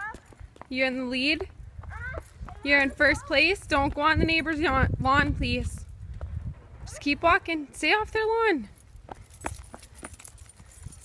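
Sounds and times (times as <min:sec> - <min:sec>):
wind rumble on microphone: 0:01.2 - 0:08.2
keys jingling: 0:08.7 - 0:11.0.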